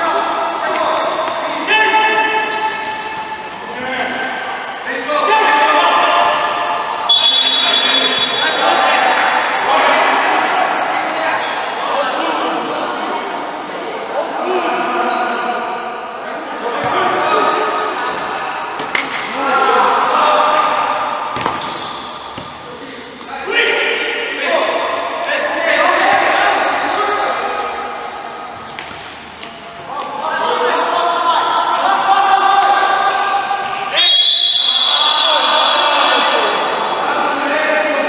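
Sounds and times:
shouting voices: 0:00.0 - 0:13.4, 0:22.6 - 0:28.6, 0:29.9 - 0:38.0
shoe squeaks: 0:00.5 - 0:08.6, 0:18.0 - 0:19.4, 0:21.4 - 0:25.3, 0:28.0 - 0:29.8, 0:33.1 - 0:35.4
referee whistle blast: 0:06.3 - 0:08.6, 0:33.9 - 0:35.9
ball kicks and bounces: 0:21.4 - 0:21.8.

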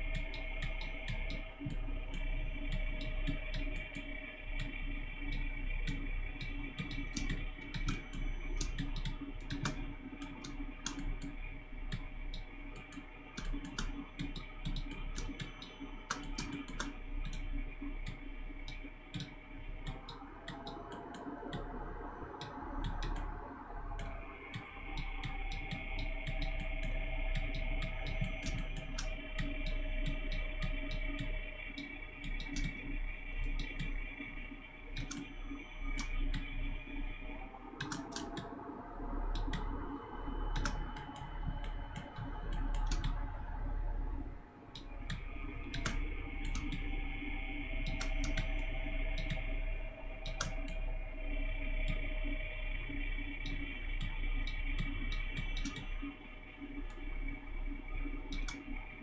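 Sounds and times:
low hum: 0:00.0 - 0:59.0
soft background music: 0:00.0 - 0:59.0
computer mouse clicks: 0:00.1 - 0:21.7, 0:22.4 - 0:23.3, 0:24.0 - 0:34.0, 0:35.0 - 0:36.5, 0:37.8 - 0:38.6, 0:39.3 - 0:39.7, 0:40.5 - 0:43.3, 0:44.7 - 0:46.9, 0:47.8 - 0:49.5, 0:50.2 - 0:50.8, 0:53.4 - 0:56.1, 0:58.2 - 0:58.8.

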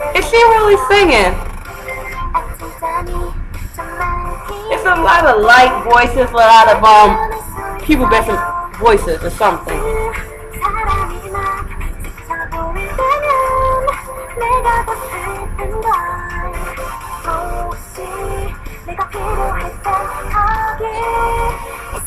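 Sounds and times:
women singing pop song: 0:00.0 - 0:22.0.

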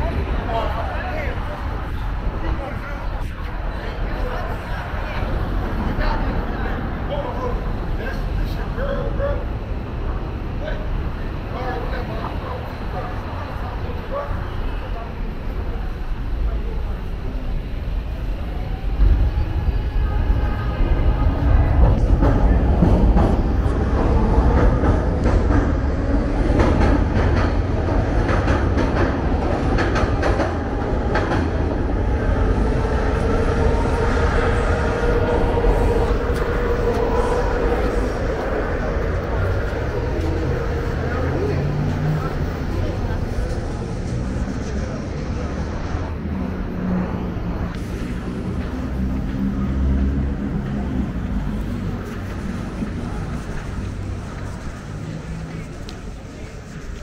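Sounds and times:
elevated train rumbling: 0:00.0 - 0:57.0
wheels clacking over rail joints: 0:21.7 - 0:32.1.

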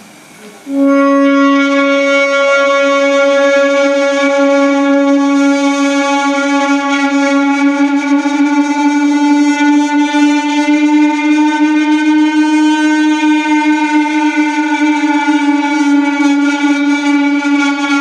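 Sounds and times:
electric guitar droning note: 0:00.7 - 0:18.0.

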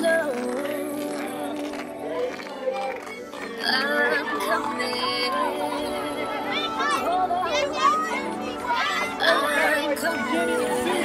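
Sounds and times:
girls shouting and cheering: 0:02.6 - 0:11.0.

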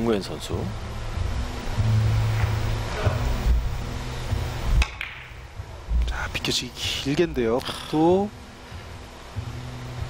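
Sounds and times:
soft background music: 0:00.0 - 0:10.0
billiard cue striking ball: 0:04.8 - 0:05.4.

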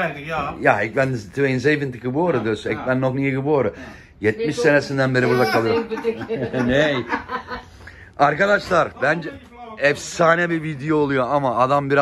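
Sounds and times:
man speaking: 0:00.0 - 0:05.8, 0:08.2 - 0:12.0
man chuckling: 0:05.2 - 0:07.6.

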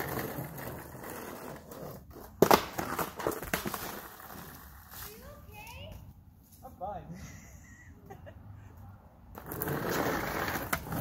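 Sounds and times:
skateboard clattering on ground: 0:00.0 - 0:05.1, 0:09.4 - 0:11.0
skateboard wheels rolling on asphalt: 0:00.0 - 0:06.2, 0:09.2 - 0:11.0.

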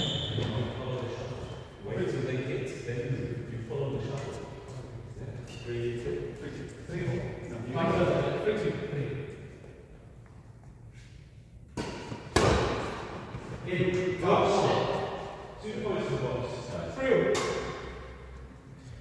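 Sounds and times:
men's voices echoing: 0:00.0 - 0:09.5, 0:13.6 - 0:18.3
racket hitting shuttlecock: 0:11.7 - 0:13.4, 0:17.2 - 0:18.2.

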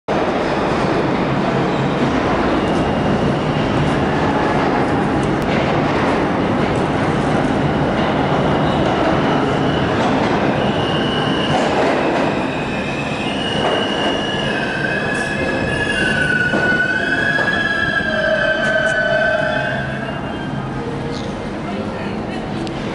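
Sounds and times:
subway train rumbling on rails: 0:00.1 - 0:22.9.

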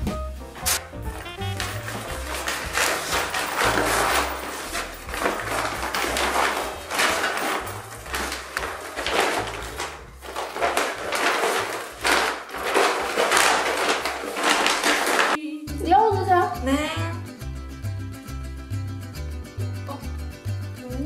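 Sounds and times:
soft background music: 0:00.0 - 0:14.7, 0:15.4 - 0:18.4, 0:19.6 - 0:21.0
shopping bags rustling: 0:00.2 - 0:15.4.

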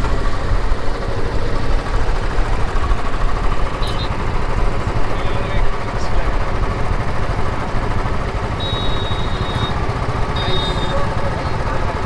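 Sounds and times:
fluttering engine rumble: 0:00.0 - 0:12.0
thin high steady tone: 0:08.6 - 0:11.1.

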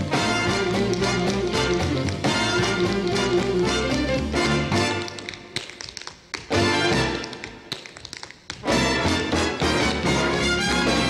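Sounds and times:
big-band orchestra playing: 0:00.0 - 0:05.2, 0:06.5 - 0:07.3, 0:08.6 - 0:11.0
tap shoes on stage floor: 0:00.0 - 0:11.0.

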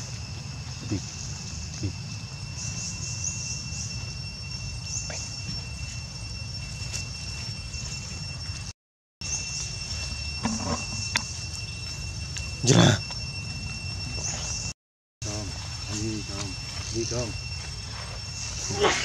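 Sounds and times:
faint chirps: 0:00.0 - 0:19.0
high-pitched insect drone: 0:00.0 - 0:19.0.

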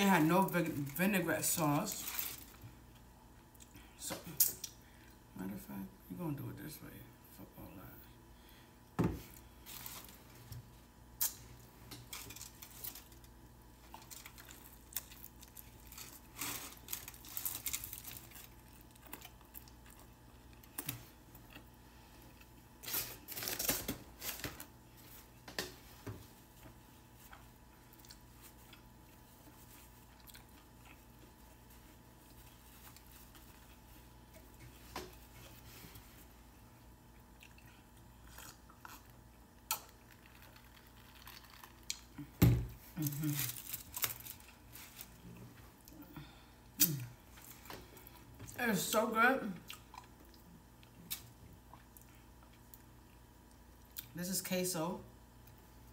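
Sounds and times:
foil wrapper rustling: 0:00.0 - 0:02.7, 0:09.6 - 0:10.5, 0:11.2 - 0:19.8, 0:22.8 - 0:25.2, 0:42.8 - 0:45.2
faint steady hum: 0:00.0 - 0:55.9
person chewing: 0:13.8 - 0:22.8, 0:27.1 - 0:34.6, 0:36.9 - 0:48.6, 0:49.6 - 0:54.1.

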